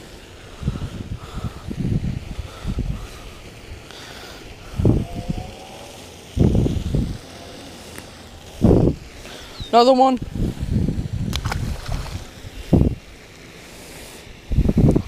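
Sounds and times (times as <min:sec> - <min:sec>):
wind buffeting microphone: 0:00.0 - 0:13.3, 0:14.3 - 0:15.0.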